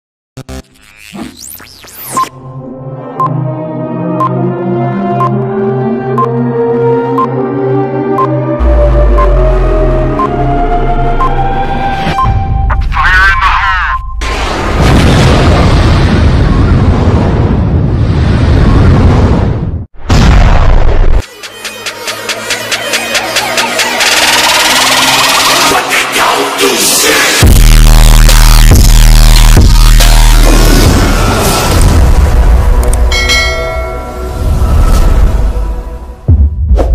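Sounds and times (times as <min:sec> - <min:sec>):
explosion boom and low rumble: 0:14.2 - 0:21.2
bell chime: 0:33.1 - 0:34.8.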